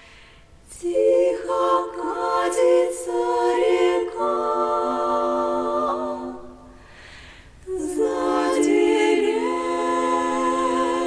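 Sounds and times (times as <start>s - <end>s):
women singing in close harmony: 0.7s - 6.8s, 7.6s - 11.0s.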